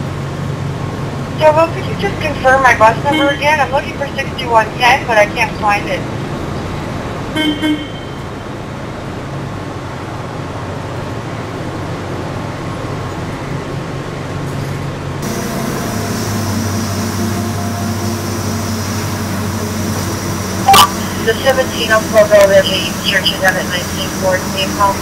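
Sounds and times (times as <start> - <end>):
diesel bus engine idling: 0.0 - 25.0
faint high whine: 15.2 - 25.0.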